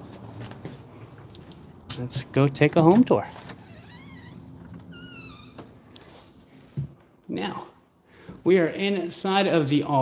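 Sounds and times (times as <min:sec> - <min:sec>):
door hinge squeaking: 0:03.5 - 0:05.8.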